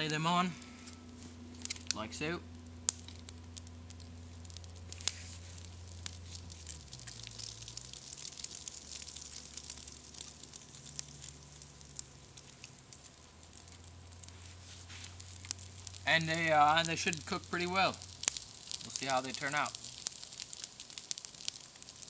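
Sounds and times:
campfire crackling and popping: 0.0 - 22.0
fish sizzling: 0.0 - 22.0.

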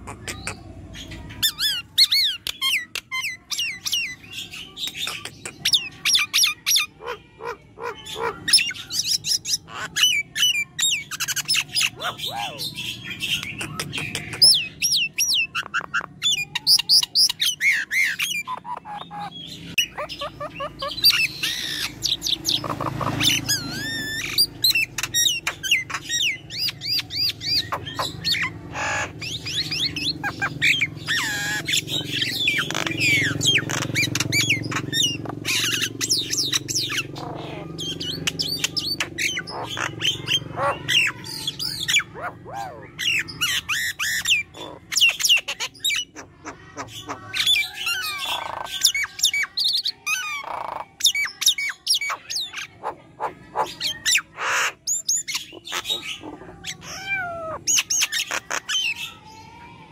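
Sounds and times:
myna calling: 0.0 - 59.9.

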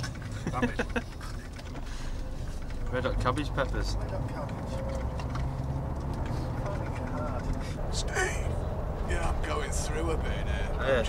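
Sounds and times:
people laughing: 0.0 - 1.8.

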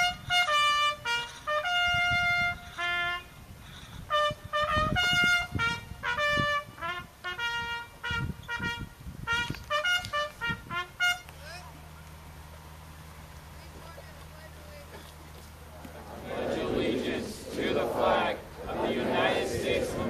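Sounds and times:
bugle call on brass horn: 0.0 - 3.4, 4.1 - 11.7.

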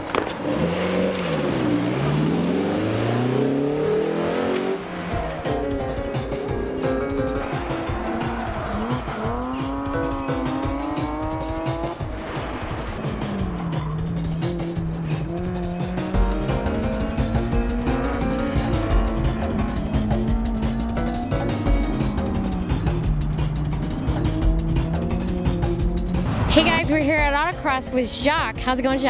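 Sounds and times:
car engines revving: 0.0 - 29.0
music with steady beat: 5.2 - 29.0.

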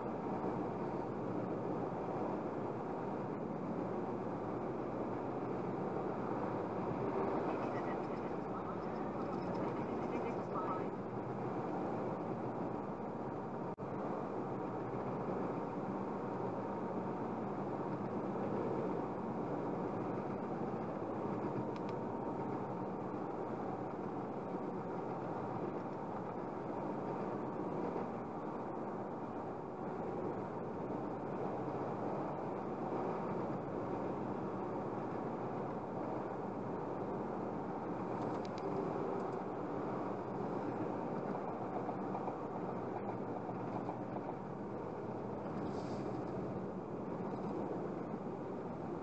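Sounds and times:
road and tyre noise in car: 0.0 - 49.0.

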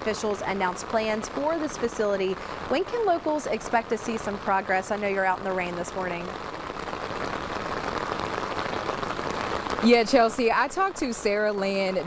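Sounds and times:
woman speaking: 0.0 - 6.4, 9.8 - 12.0
rain on an umbrella: 0.0 - 12.0.

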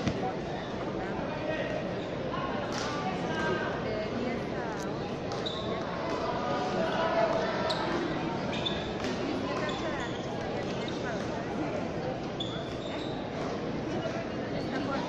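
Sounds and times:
crowd murmur: 0.0 - 15.0.

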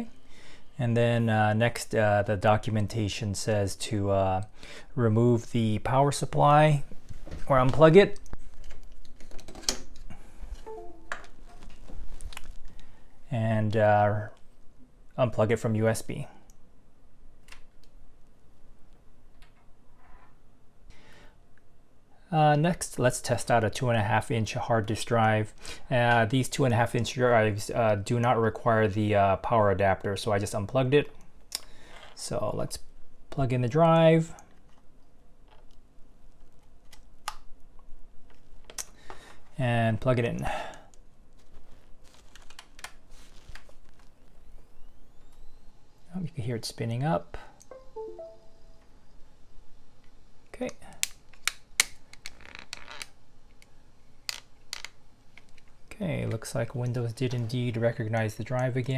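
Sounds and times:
faint electronic tone: 10.6 - 11.6, 47.7 - 49.2
cable handling: 41.4 - 44.1.

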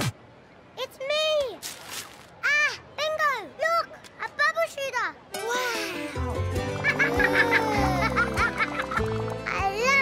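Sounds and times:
wrapping paper tearing: 1.6 - 2.3
child exclaiming: 7.1 - 8.2, 9.5 - 10.0.

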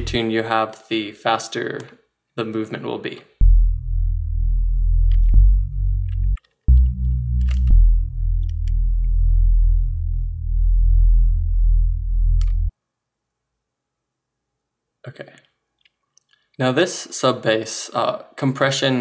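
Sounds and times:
detuned synth sub bass: 3.4 - 12.7.

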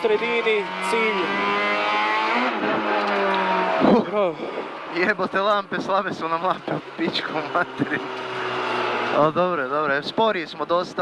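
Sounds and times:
rally car engine under throttle: 0.0 - 11.0.

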